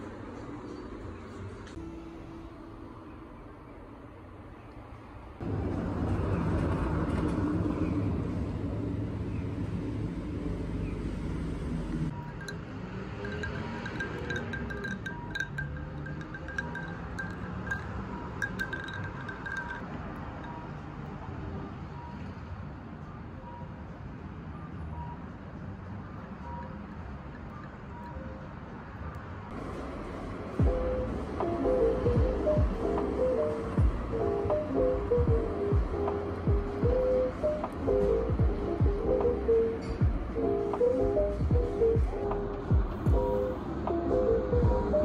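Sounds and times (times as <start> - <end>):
ice cubes clinking in glass: 13.2 - 19.8
background music: 29.5 - 45.0.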